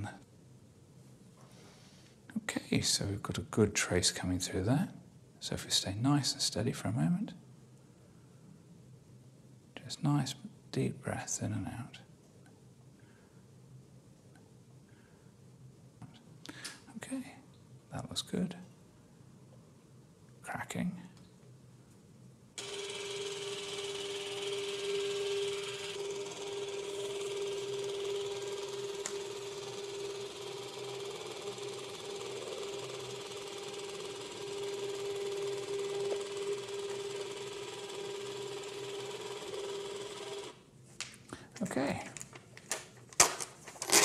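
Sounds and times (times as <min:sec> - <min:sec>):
printer humming: 0:22.6 - 0:40.6.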